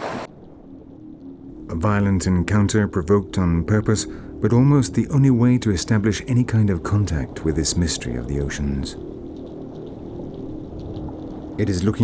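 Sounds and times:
underwater low rumble: 0:00.0 - 0:11.6.

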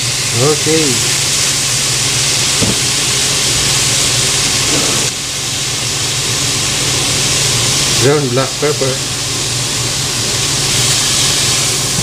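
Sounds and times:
sauce sizzling in a frying pan: 0:00.0 - 0:12.0.

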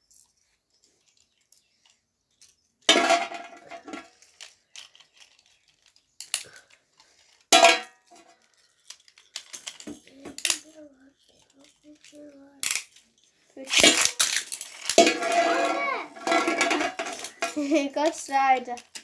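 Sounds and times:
spinning tops crashing into metal pan: 0:02.9 - 0:04.1, 0:07.5 - 0:08.0, 0:13.7 - 0:17.8
spinning tops clacking: 0:13.7 - 0:19.0.

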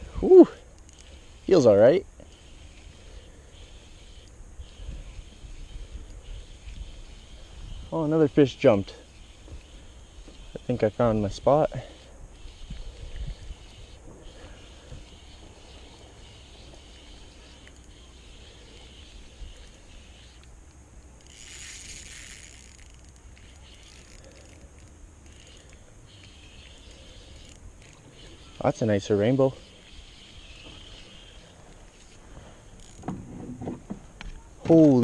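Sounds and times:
fishing reel being cranked: 0:00.2 - 0:33.1.

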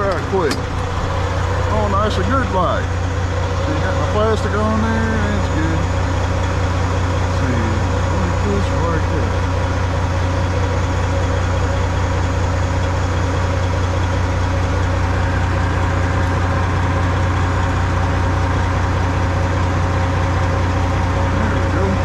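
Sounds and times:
diesel truck engine idling: 0:00.0 - 0:22.0.

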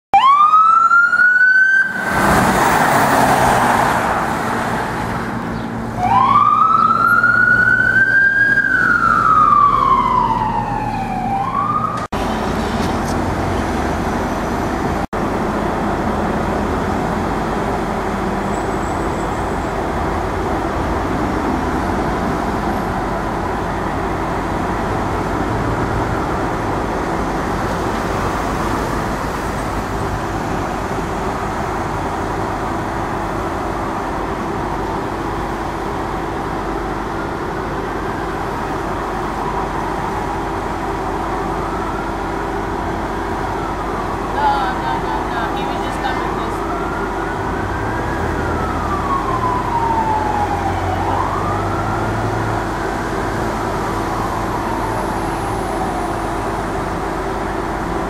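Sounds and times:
siren yelp: 0:00.1 - 0:02.1, 0:05.9 - 0:12.1, 0:38.0 - 0:57.0
emergency siren wailing: 0:00.1 - 0:13.6, 0:16.7 - 0:58.0
idling engines and street traffic: 0:00.2 - 0:58.0.

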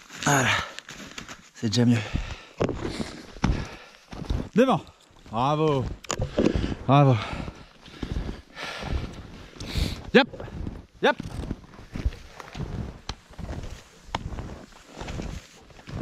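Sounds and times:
footsteps crunching through snow: 0:00.0 - 0:16.0.

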